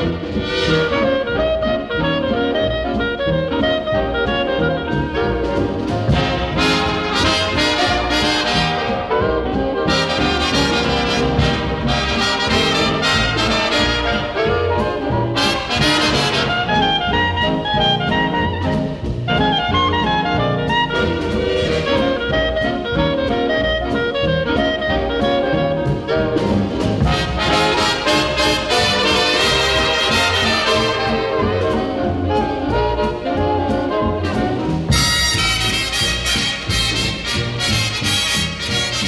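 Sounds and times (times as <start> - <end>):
big band brass music: 0.0 - 39.0.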